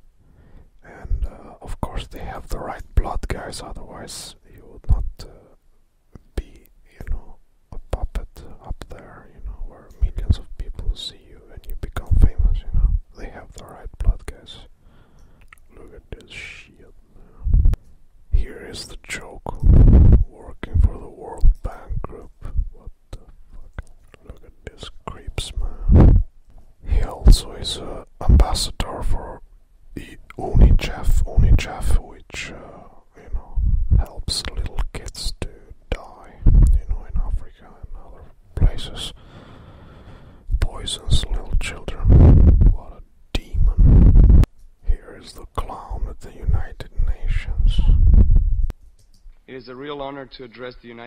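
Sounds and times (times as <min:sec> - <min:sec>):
person whispering: 0:00.8 - 0:05.6, 0:06.2 - 0:14.7, 0:15.5 - 0:29.4, 0:30.0 - 0:39.3, 0:40.5 - 0:48.2.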